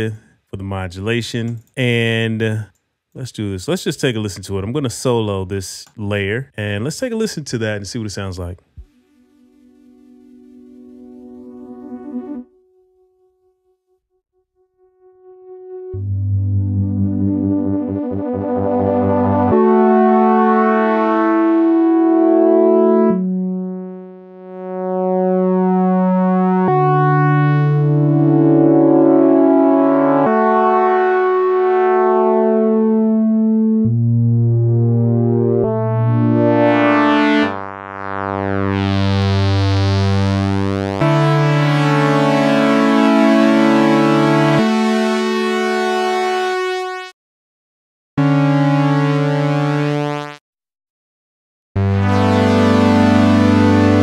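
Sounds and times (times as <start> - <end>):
synthesizer sustained chords: 8.8 - 12.5, 15.2 - 47.0, 51.8 - 54.0.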